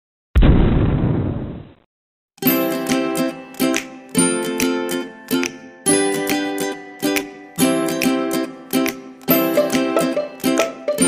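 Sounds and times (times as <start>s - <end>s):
explosion boom: 0.4s - 1.8s.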